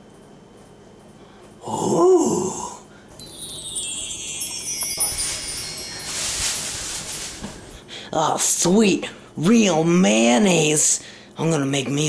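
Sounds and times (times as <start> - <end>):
shimmering chime tones: 3.2 - 7.9
rustling hiss: 3.2 - 8.1.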